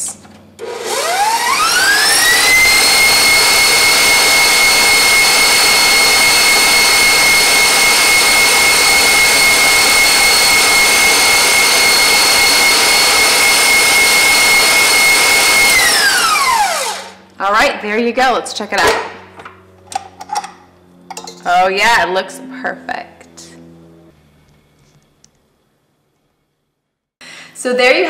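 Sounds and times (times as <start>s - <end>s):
stand mixer whining: 0.6s - 17.2s.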